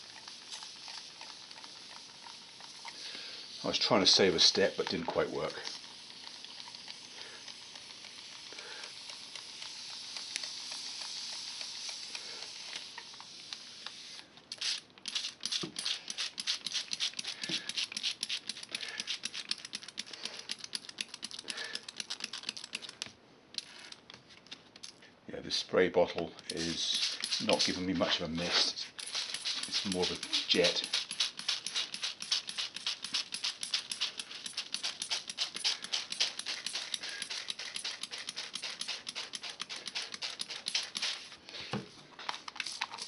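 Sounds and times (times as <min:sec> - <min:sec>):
spray bottle hissing: 0:00.0 - 0:23.0, 0:26.5 - 0:41.3
spray bottle clicking squirts: 0:07.6 - 0:23.0, 0:26.5 - 0:27.9, 0:29.0 - 0:41.2.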